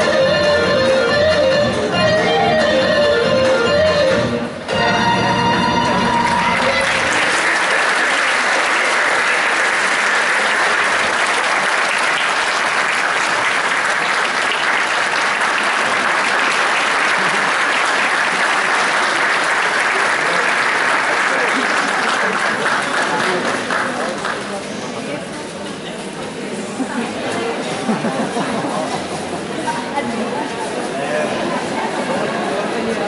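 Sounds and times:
audience clapping: 6.1 - 24.7.

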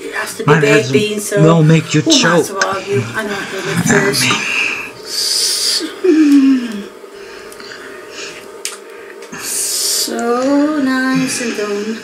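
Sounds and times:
person breathing: 2.7 - 6.0, 7.1 - 10.1
person groaning: 2.8 - 5.0.

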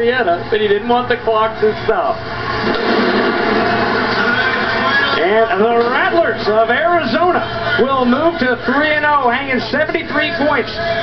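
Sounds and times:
arena crowd cheering: 2.3 - 11.0.

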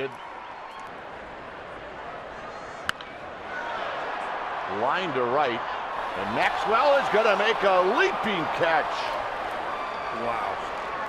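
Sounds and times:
ballpark crowd noise: 0.0 - 11.0
baseball bat crack: 2.8 - 3.2.

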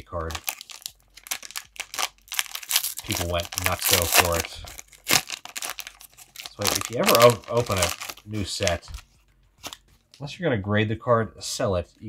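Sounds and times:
foil wrapper crinkling and tearing: 0.0 - 9.8.

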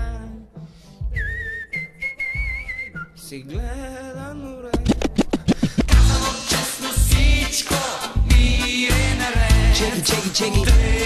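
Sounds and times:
whistled melody: 1.0 - 3.3
bass drum beat: 2.4 - 3.0, 3.6 - 4.0, 4.8 - 11.0.

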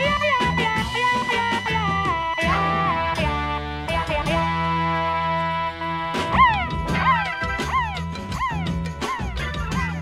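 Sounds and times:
beat with bass line: 0.0 - 10.0
turntable scratching: 6.2 - 10.0.

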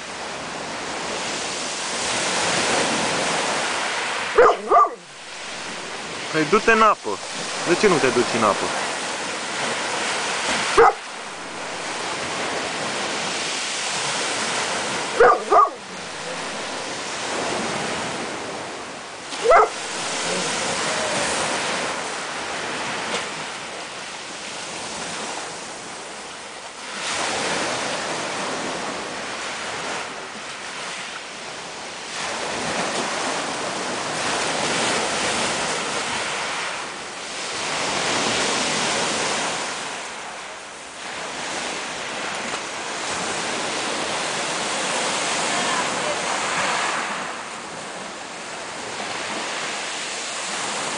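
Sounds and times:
surf washing over pebbles: 0.0 - 50.9.

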